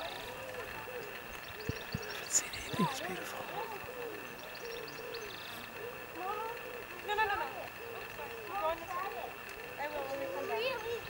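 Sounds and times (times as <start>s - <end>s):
distant overlapping calls: 0.0s - 11.0s.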